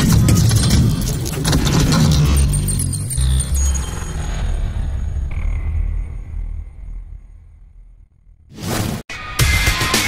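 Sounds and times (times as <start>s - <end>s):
deep low rumble: 1.5s - 8.5s.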